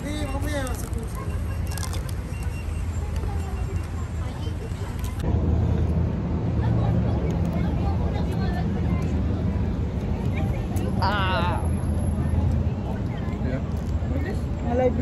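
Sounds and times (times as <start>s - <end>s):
faint voices chattering: 0.0s - 15.0s.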